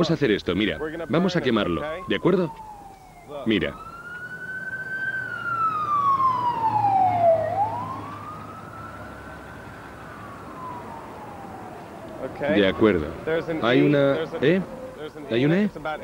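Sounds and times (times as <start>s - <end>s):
emergency siren wailing: 0.0s - 16.0s.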